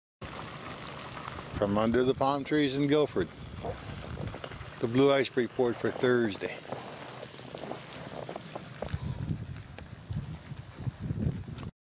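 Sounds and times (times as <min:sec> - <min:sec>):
wind buffeting microphone: 0:03.1 - 0:11.7.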